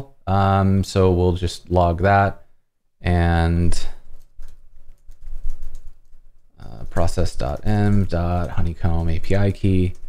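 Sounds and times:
keyboard typing: 0:04.0 - 0:10.0.

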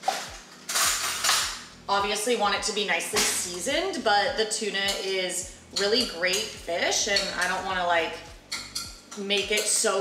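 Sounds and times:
metal kitchen utensils clattering: 0:00.0 - 0:01.7, 0:03.1 - 0:03.7, 0:05.8 - 0:07.7, 0:08.5 - 0:10.0.

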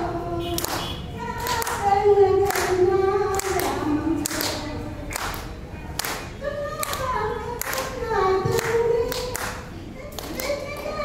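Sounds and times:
hand claps: 0:00.6 - 0:01.8, 0:02.5 - 0:02.7, 0:03.3 - 0:11.0.

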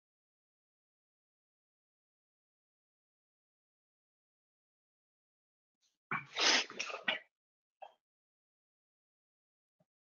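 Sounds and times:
person sneezing: 0:06.3 - 0:07.1.

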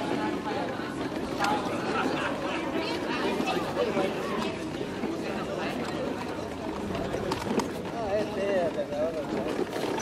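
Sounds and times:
wheelchair rolling over cobblestones: 0:00.0 - 0:10.0
wheels knocking: 0:04.7 - 0:10.0.

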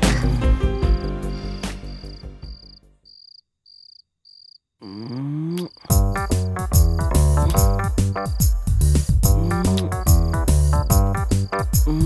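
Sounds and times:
cricket chirping: 0:00.1 - 0:12.0
loud music with regular beat: 0:05.9 - 0:11.9.

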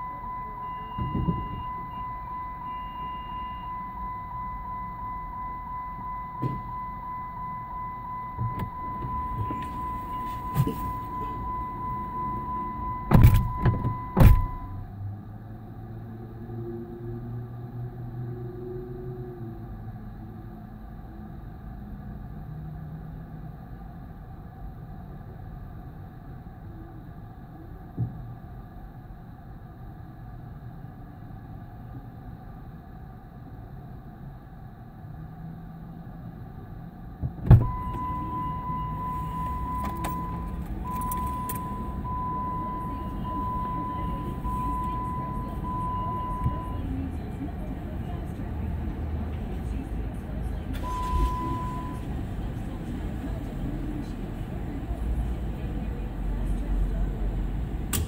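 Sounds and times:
car door-open warning chime: 0:00.0 - 0:14.8, 0:37.5 - 0:46.9, 0:50.8 - 0:52.2
low vehicle rumble: 0:00.0 - 0:58.0
vehicle door thumps: 0:13.1 - 0:14.6, 0:37.2 - 0:38.0.

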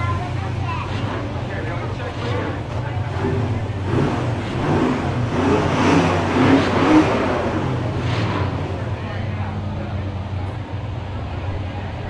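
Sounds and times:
car engine running: 0:00.0 - 0:12.0
people's voices: 0:00.0 - 0:12.0.

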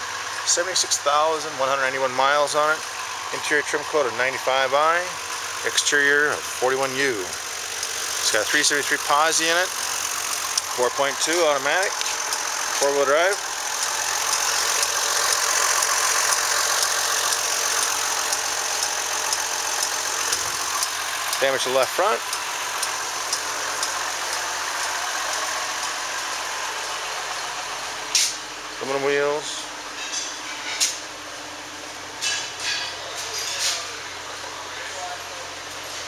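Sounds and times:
car engine idling: 0:00.0 - 0:36.0.

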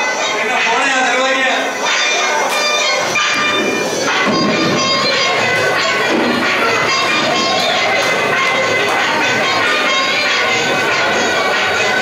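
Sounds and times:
soundtrack over loudspeakers: 0:00.0 - 0:12.0.

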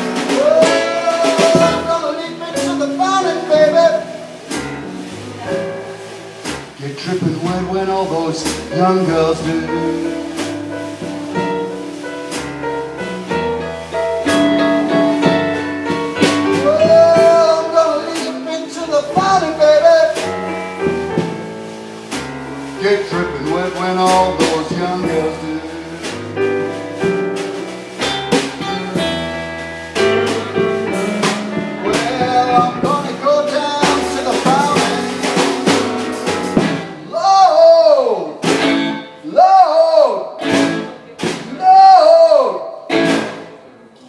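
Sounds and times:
drum kit and cymbal hits: 0:00.0 - 0:43.7
blues band playing: 0:00.0 - 0:44.0
keyboard chords: 0:25.4 - 0:37.0.

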